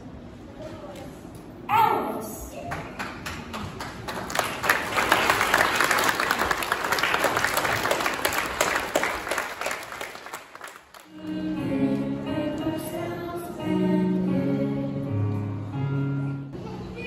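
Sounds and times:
audience applauding: 2.7s - 11.1s.

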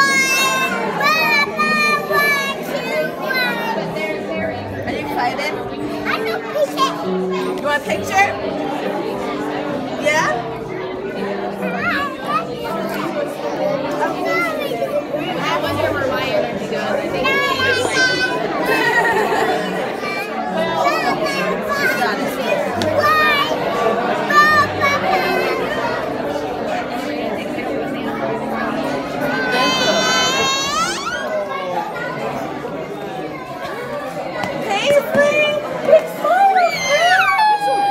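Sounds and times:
room chatter: 0.0s - 37.9s
young children chattering and calling: 0.0s - 37.9s
child's high-pitched cry: 29.5s - 31.4s.

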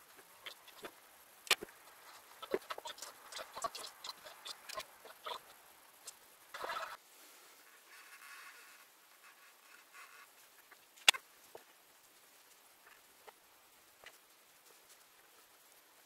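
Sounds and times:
scratchy tape burst: 0.0s - 7.0s.

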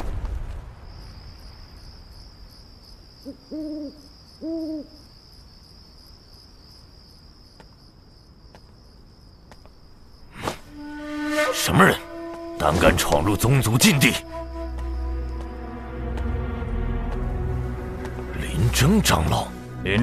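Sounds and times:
crickets chirring: 0.0s - 20.0s
owl hooting: 3.2s - 5.0s.

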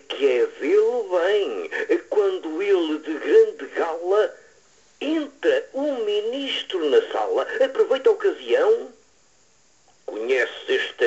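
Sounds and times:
person reciting poetry: 0.0s - 9.0s.

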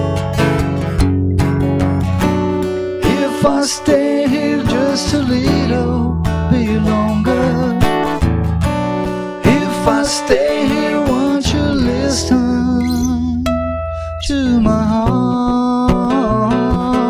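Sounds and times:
acoustic guitar strumming: 0.0s - 17.0s
man singing: 3.0s - 8.2s, 9.4s - 17.0s.

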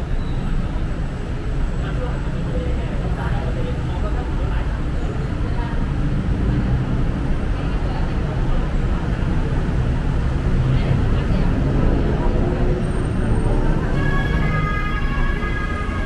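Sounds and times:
faint indistinct voices: 0.0s - 16.0s
road traffic rumble: 0.0s - 16.0s.

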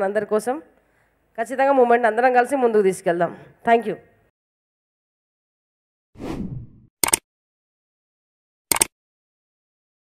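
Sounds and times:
sharp double click: 7.0s - 7.2s, 8.7s - 8.9s.

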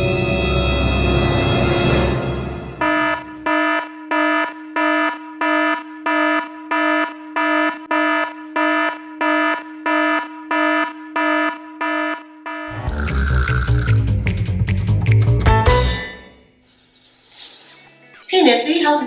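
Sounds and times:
electronic alarm beeping: 2.7s - 14.0s.

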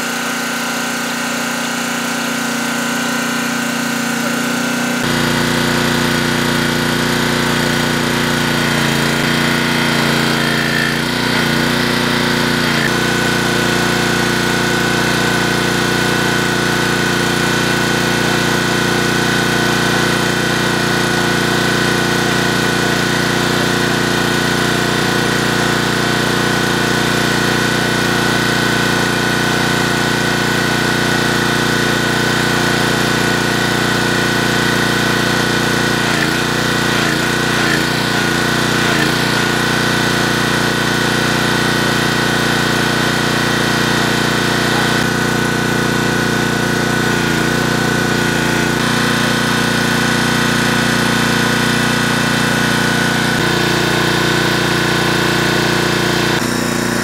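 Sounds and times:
small engine running: 0.0s - 57.0s.

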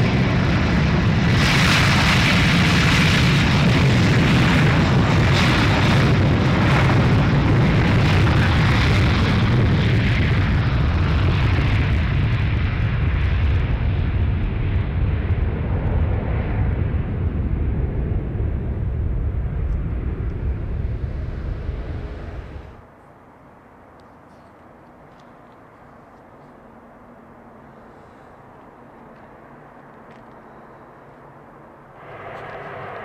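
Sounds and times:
jet engines roaring at takeoff: 0.0s - 22.9s, 24.0s - 33.0s.

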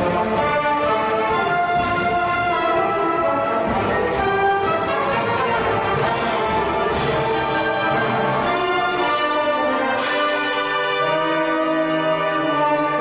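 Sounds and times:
orchestral music with brass: 0.0s - 13.0s.

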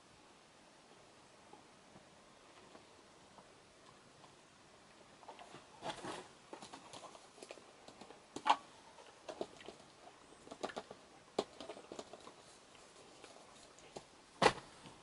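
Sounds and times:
handling clicks taps and rustles: 9.2s - 14.1s.

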